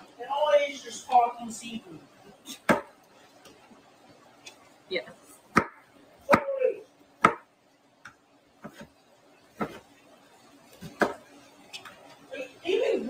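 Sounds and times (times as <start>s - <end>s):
knife chopping onion on board: 2.5s - 3.0s, 5.5s - 7.5s, 8.6s - 8.9s, 9.5s - 9.9s, 10.8s - 11.2s.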